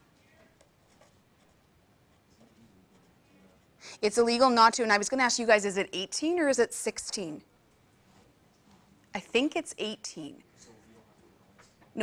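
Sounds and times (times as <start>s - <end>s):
marker scratching on paper: 0.6s - 4.2s.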